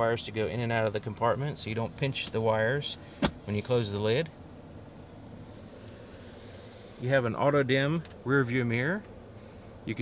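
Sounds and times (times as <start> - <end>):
car cabin low hum: 0.0 - 10.0.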